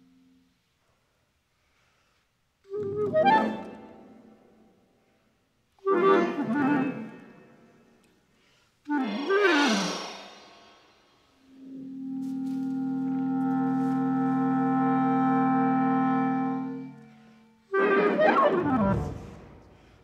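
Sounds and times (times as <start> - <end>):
clarinet downward sweeping figure: 2.7 - 4.2, 11.4 - 19.6
clarinet sustained low note: 11.5 - 17.4.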